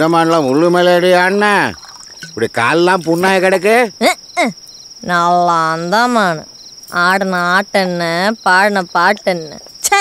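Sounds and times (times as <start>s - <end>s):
crickets chirping: 0.0s - 10.0s.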